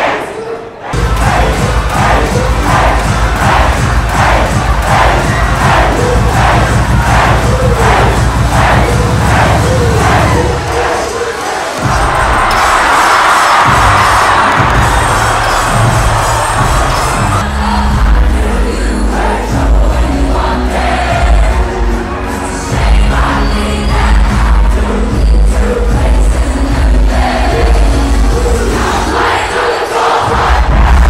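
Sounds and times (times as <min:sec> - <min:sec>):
crowd cheering and shouting: 0:00.0 - 0:31.0
bass-heavy dance music: 0:01.0 - 0:29.6, 0:30.2 - 0:31.0.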